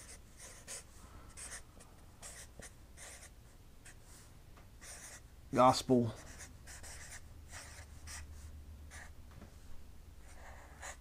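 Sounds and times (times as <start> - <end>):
marker scratching on paper: 0.0 - 1.6, 2.2 - 4.1, 4.8 - 5.2, 6.2 - 9.1, 10.2 - 11.0
low steady hum: 0.0 - 11.0.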